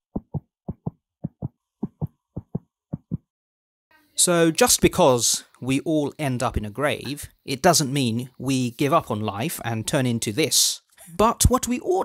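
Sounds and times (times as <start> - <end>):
heartbeat thuds: 0.1 - 3.3.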